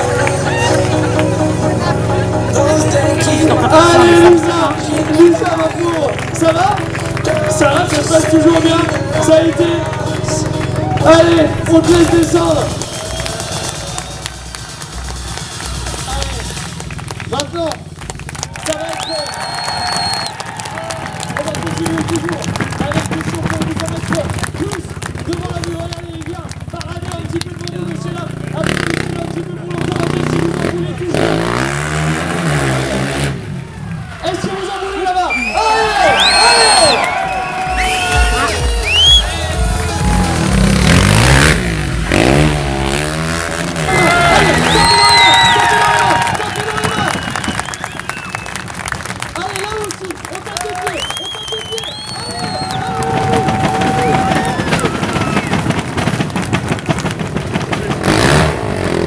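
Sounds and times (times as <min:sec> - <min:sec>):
music with vocals: 0:00.0 - 0:16.6, 0:37.7 - 0:41.2
quad engine revving: 0:00.0 - 0:18.9, 0:21.2 - 0:33.9, 0:38.4 - 0:50.1, 0:52.4 - 0:59.0.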